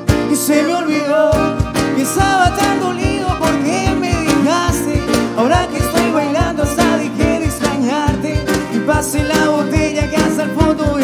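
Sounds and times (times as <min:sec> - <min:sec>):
acoustic guitars playing: 0:00.0 - 0:11.0
bending melodic line: 0:00.0 - 0:11.0.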